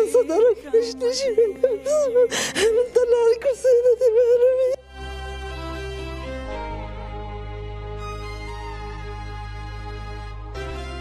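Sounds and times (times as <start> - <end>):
woman speaking while weeping: 0.0 - 4.8
gasping sob: 2.0 - 3.0.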